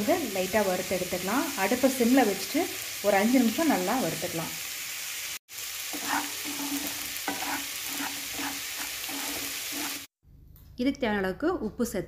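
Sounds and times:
vegetables sizzling in oil: 0.0s - 10.2s
spatula scraping a pan: 5.8s - 10.1s.

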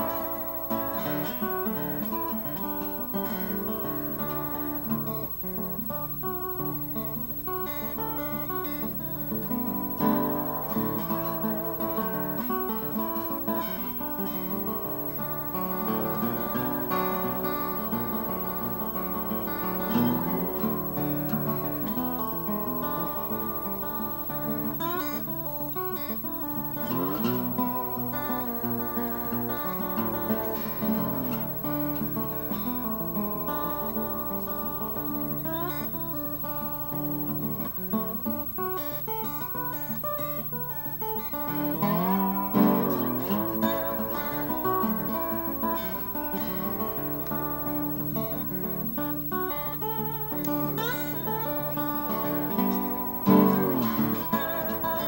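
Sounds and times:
slide acoustic guitar blues: 0.0s - 55.0s.

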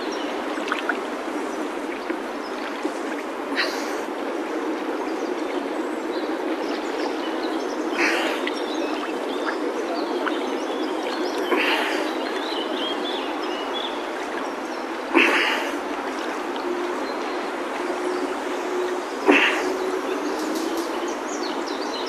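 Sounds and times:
river water sloshing and lapping: 0.0s - 22.0s
water splashes: 0.0s - 22.0s.

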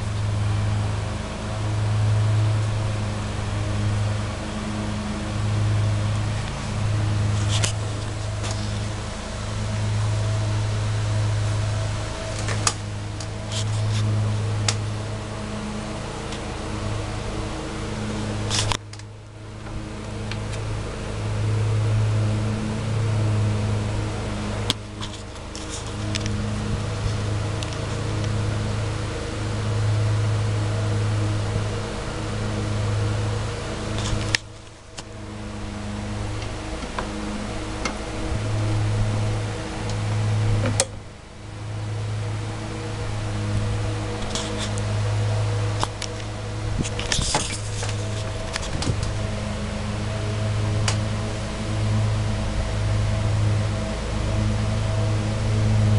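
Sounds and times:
lawn mower engine running: 0.0s - 55.9s.

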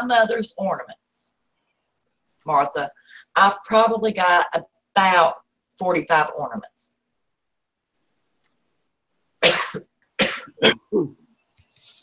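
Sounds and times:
woman coughing: 9.4s - 10.8s.

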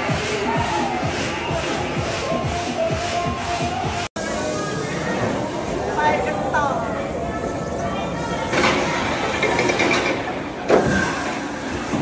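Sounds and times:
ride machinery rumble: 4.2s - 12.0s.

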